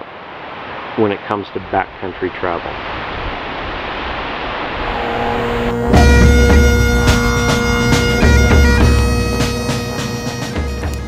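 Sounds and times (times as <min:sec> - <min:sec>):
outdoor background hiss: 0:00.0 - 0:11.0.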